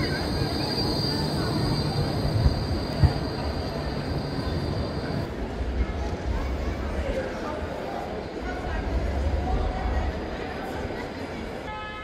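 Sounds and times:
tram low rumble: 0:00.0 - 0:11.7.

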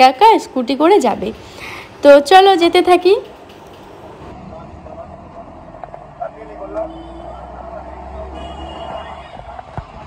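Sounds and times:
street traffic: 0:00.0 - 0:10.0
vehicle ride rumble: 0:03.4 - 0:08.3.

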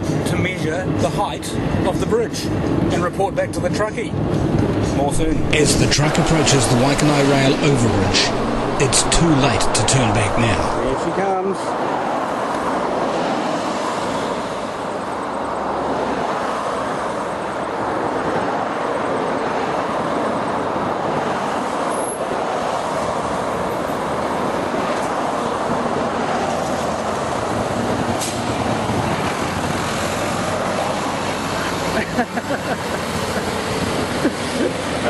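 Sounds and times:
highway traffic rushing: 0:00.0 - 0:35.0.

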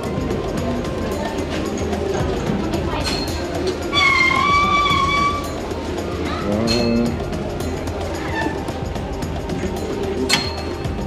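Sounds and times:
prayer wheel bell ringing: 0:03.1 - 0:08.5.

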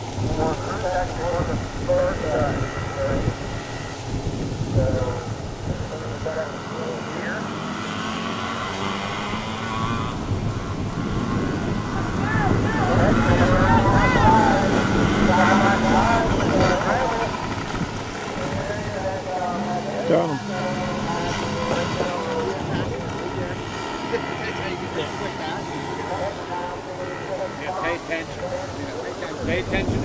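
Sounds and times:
dirt bike engines racing: 0:00.0 - 0:30.0
people's voices: 0:00.0 - 0:30.0.

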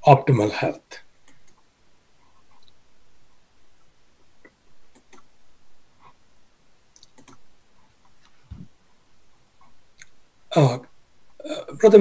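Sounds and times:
computer clicks: 0:01.2 - 0:01.6, 0:04.9 - 0:05.3, 0:06.9 - 0:07.4.

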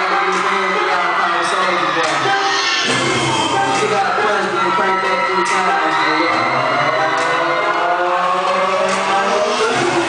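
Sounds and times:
dance music over sound system: 0:00.0 - 0:10.0.

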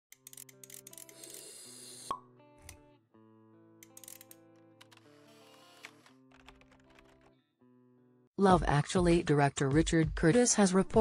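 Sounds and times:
soft music: 0:00.1 - 0:11.0.

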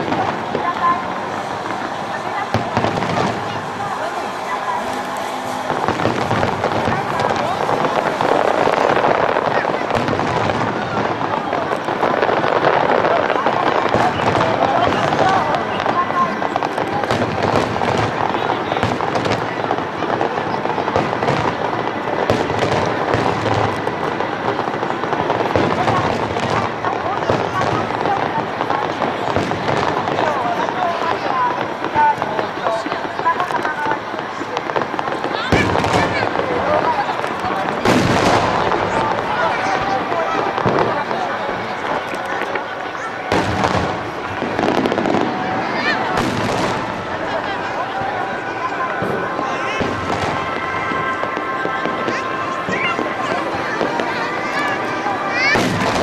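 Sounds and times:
fireworks bursting and crackling: 0:00.0 - 0:56.0
heavy firework booms: 0:00.0 - 0:56.0.

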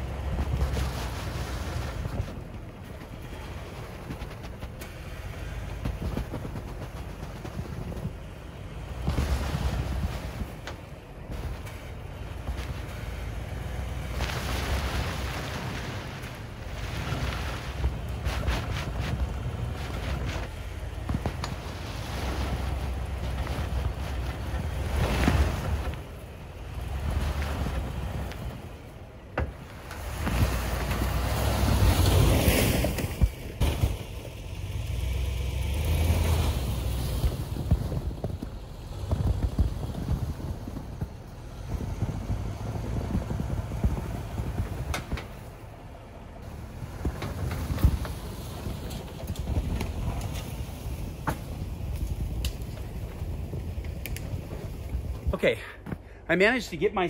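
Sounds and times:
car engine revving: 0:00.0 - 0:55.5
tyres working in snow: 0:00.0 - 0:57.0
wind on microphone: 0:36.7 - 0:45.5.

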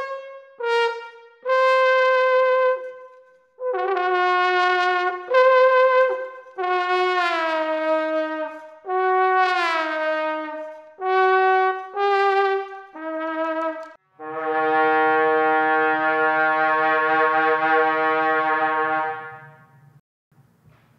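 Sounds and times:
glass trombone playing held notes: 0:00.0 - 0:19.9.

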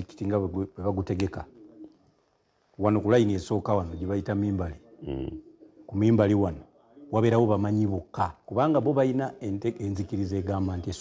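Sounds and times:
man talking in low voice: 0:00.0 - 0:01.9, 0:02.8 - 0:11.0.

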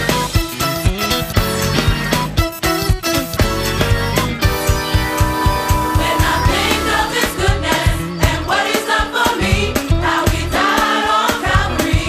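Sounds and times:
band with drum beat: 0:00.0 - 0:12.0
gospel choir singing: 0:05.6 - 0:12.0.

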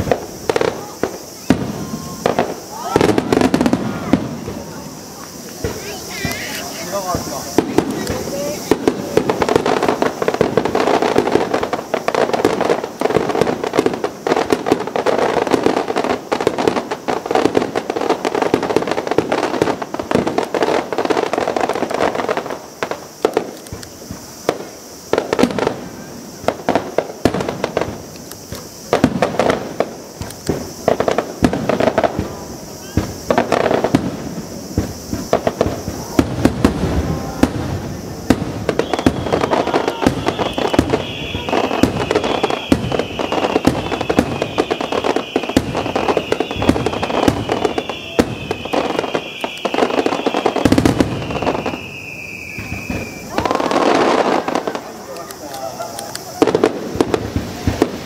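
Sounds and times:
firework whistle: 0:00.0 - 0:58.0
fireworks bangs and crackle: 0:00.0 - 0:58.0.

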